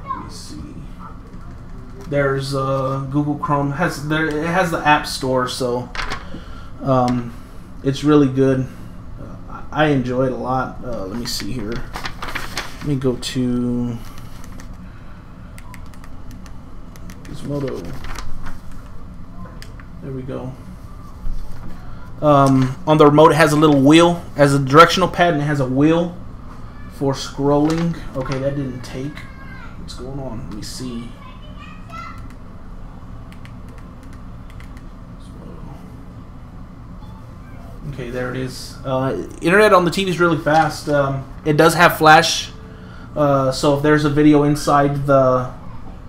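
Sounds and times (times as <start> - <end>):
remote keyboard keys clicking: 15.6 - 17.4, 33.3 - 34.9.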